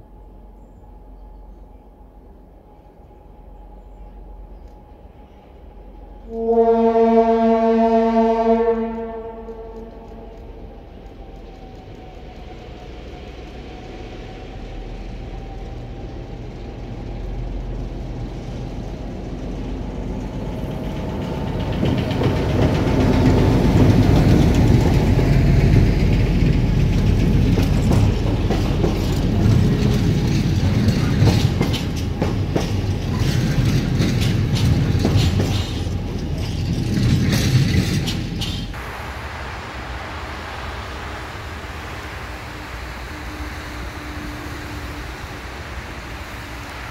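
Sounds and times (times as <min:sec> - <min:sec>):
diesel locomotive engine passing: 0:00.0 - 0:46.9
wagon wheels clattering over rail joints: 0:25.7 - 0:38.8.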